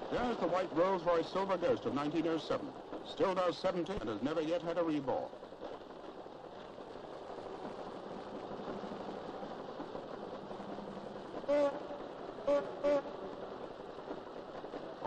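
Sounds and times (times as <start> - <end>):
old car engines running: 0.0 - 15.0.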